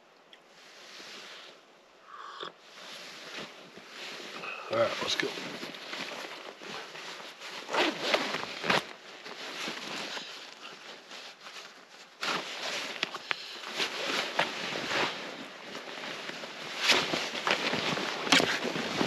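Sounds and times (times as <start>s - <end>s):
heavy fabric rustling: 2.6s - 19.0s
jacket zipper: 7.6s - 8.8s.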